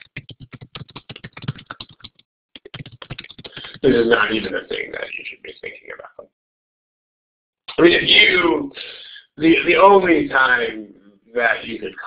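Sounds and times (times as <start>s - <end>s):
keyboard typing: 0.0s - 3.8s.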